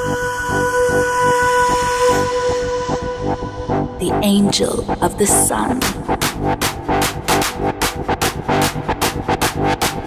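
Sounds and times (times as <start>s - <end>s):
pulsing low beat: 0.0s - 10.0s.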